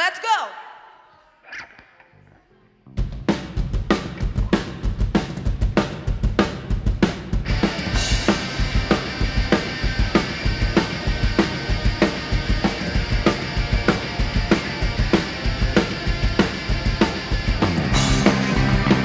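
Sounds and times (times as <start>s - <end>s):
electric guitars: 1.4s - 2.7s, 7.4s - 19.0s
bass guitar: 1.5s - 19.0s
drum kit beat: 3.0s - 19.0s.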